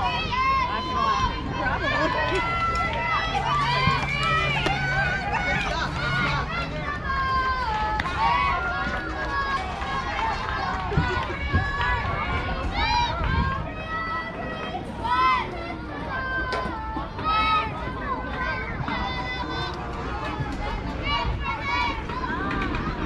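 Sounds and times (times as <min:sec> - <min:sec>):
high-pitched voices cheering: 0:00.0 - 0:23.0
loud drawn-out shouts: 0:00.0 - 0:23.0.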